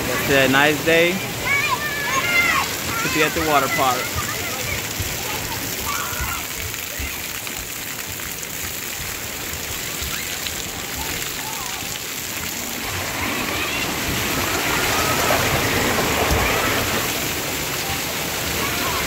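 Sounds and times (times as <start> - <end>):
children's voices calling: 0.0 - 7.7, 9.9 - 19.0
water spraying and pattering: 0.0 - 19.0.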